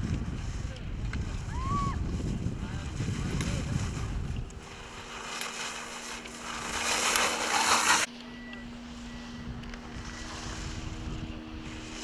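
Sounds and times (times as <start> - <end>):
wind rumble on microphone: 0.0 - 7.3, 8.7 - 12.0
skis carving on snow: 0.0 - 12.0.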